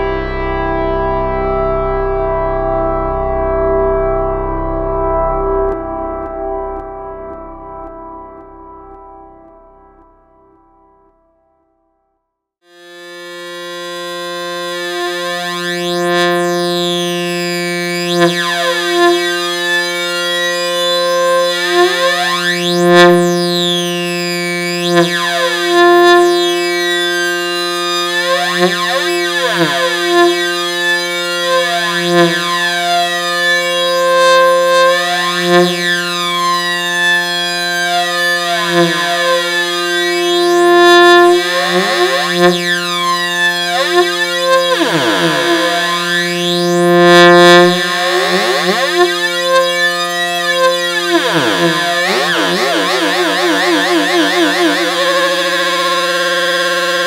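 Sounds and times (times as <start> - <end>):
synthesizer tone with flanging sweeps: 12.7 - 57.0.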